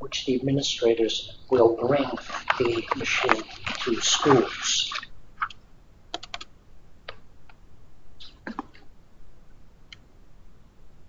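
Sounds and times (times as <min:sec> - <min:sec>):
laptop keyboard tapping: 0:02.0 - 0:06.5.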